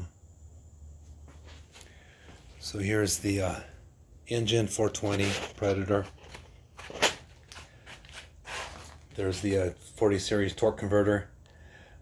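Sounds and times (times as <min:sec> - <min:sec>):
handling scuffs and rustles: 0:01.0 - 0:02.8, 0:04.8 - 0:10.0.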